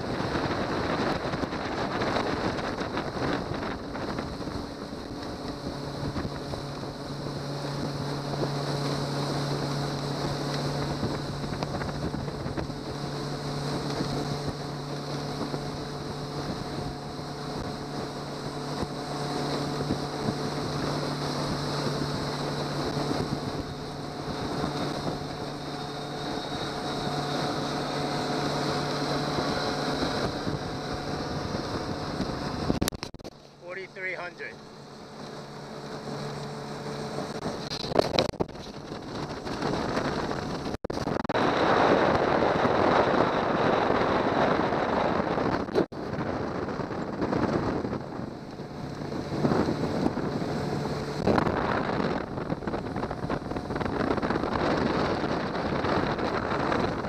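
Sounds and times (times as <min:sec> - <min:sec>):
outboard motor running: 0:00.0 - 0:57.0
rush of boat wake: 0:00.0 - 0:57.0
wind buffeting microphone: 0:00.0 - 0:57.0.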